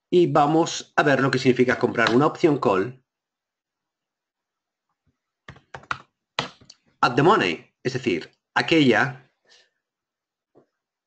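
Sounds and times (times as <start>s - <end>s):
computer keyboard clicks: 5.5s - 6.7s.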